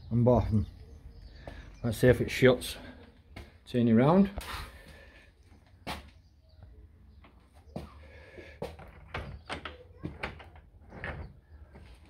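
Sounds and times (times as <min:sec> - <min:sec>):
door closing: 0:08.8 - 0:11.8.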